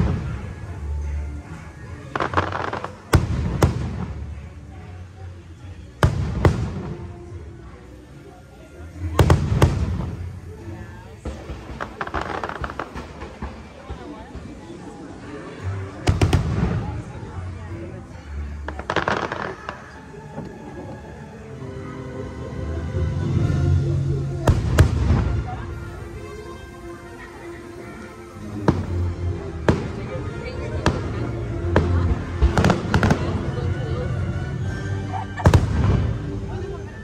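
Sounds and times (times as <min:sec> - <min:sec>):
background music: 0:00.0 - 0:37.0.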